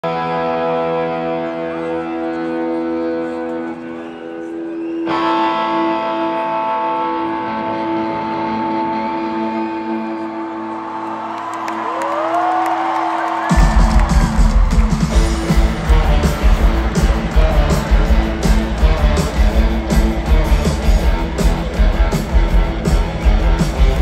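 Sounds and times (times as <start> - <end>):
droning guitar chords: 0.0 - 11.4, 14.8 - 24.0
rock band with drums: 12.6 - 24.0.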